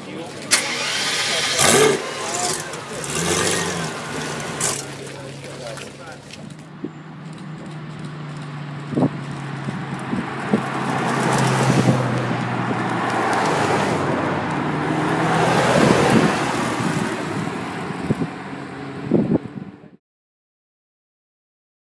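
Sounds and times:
cars driving past slowly: 0.0s - 19.8s.

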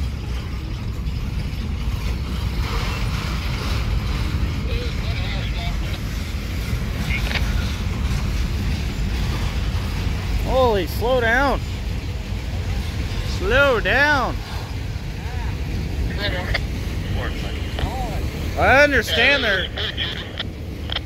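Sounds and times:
freight train rumbling: 0.0s - 21.0s.

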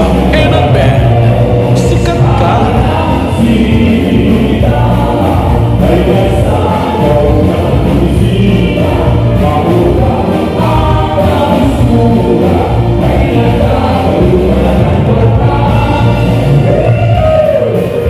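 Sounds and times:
live band dance music: 0.0s - 18.0s
steady bass line: 0.0s - 18.0s.

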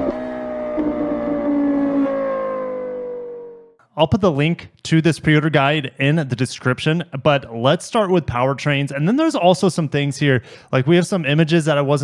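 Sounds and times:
droning tone sinking in pitch: 0.0s - 3.8s.

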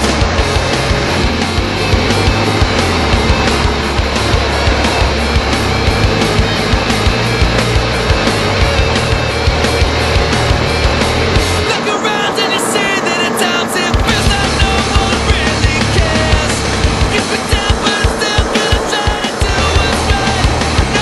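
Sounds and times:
steady drum beat: 0.0s - 11.9s, 13.9s - 21.0s
heavy bass: 0.0s - 21.0s
loud rock music: 0.0s - 21.0s.

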